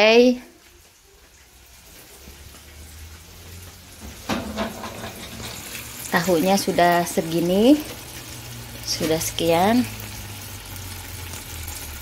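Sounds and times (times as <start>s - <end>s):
tofu sizzling in hot oil: 3.2s - 12.0s.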